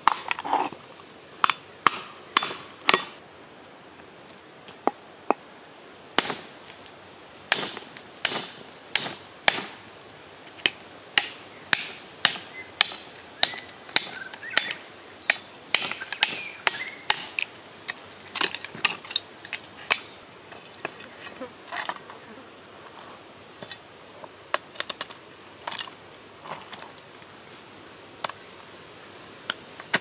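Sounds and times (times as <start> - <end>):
cleaver chopping shell on wood: 1.4 - 3.2.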